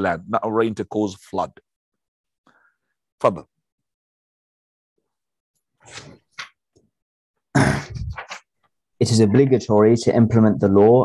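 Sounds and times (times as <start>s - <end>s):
man clearing throat: 7.5s - 8.2s.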